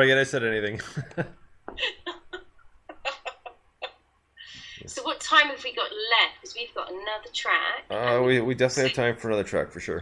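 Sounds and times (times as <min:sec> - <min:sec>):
person speaking: 0:04.5 - 0:10.0.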